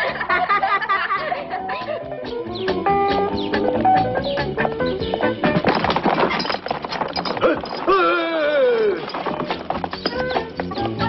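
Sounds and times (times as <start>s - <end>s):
hooves clattering: 0.0s - 11.0s.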